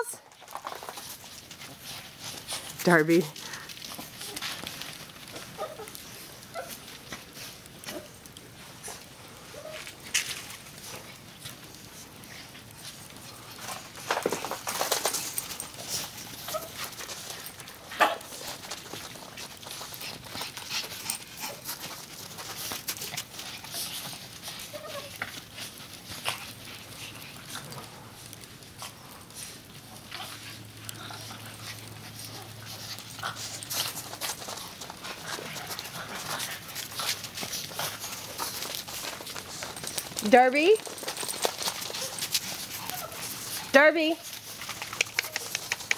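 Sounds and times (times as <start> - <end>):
small dogs vocalizing: 40.8 - 43.7, 44.6 - 45.9.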